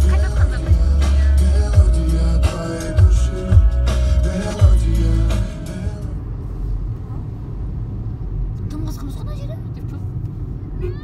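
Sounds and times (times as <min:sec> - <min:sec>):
music: 0:00.0 - 0:06.1
car cabin road noise: 0:00.0 - 0:11.0.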